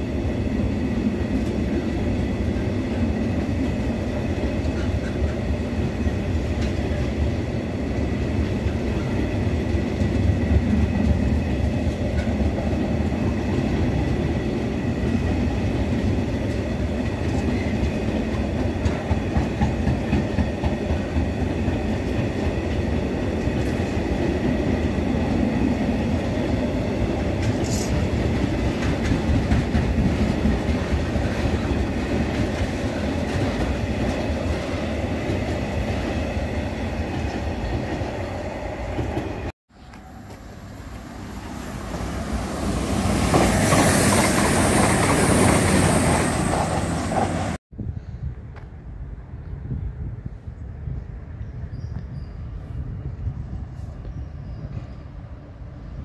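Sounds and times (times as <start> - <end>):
freight train wheels rumbling: 0.0 - 56.0
clicks of wheels on rail: 27.3 - 34.7.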